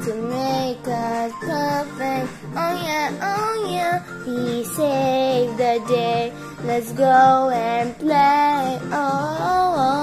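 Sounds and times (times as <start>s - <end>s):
backing music: 0.0s - 10.0s
child singing: 0.0s - 10.0s.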